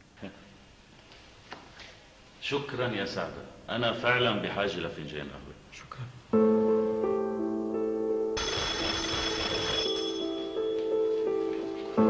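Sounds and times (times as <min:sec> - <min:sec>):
soft background music: 0:06.3 - 0:12.0
telephone bell ringing: 0:08.4 - 0:11.1.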